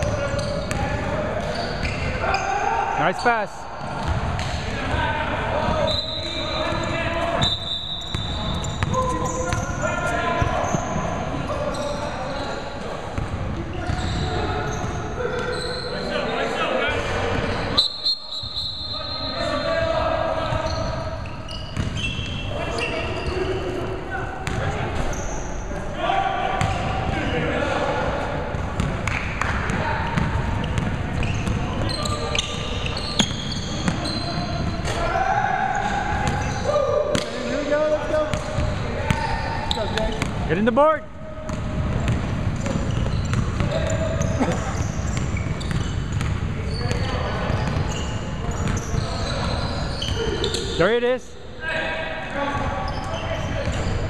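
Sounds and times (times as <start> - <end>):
players' voices echoing: 0.0 - 54.0.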